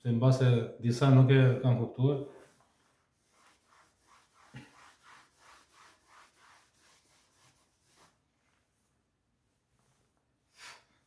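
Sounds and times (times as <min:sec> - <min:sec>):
eraser rubbing on blackboard: 0:02.5 - 0:08.2.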